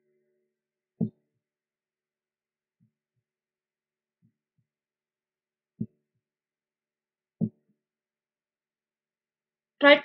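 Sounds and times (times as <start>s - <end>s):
soft low thumps: 7.4s - 7.6s.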